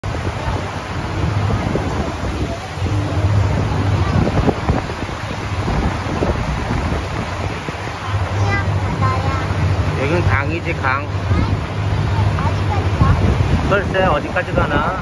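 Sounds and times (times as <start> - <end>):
boat motor humming: 0.0 - 15.0
water washing past hull: 0.0 - 15.0
wind buffeting microphone: 0.0 - 15.0.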